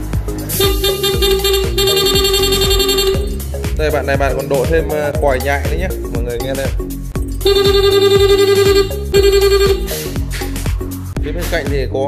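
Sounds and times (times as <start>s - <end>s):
electronic scooter horn blasts: 0.5s - 3.5s, 7.4s - 10.1s.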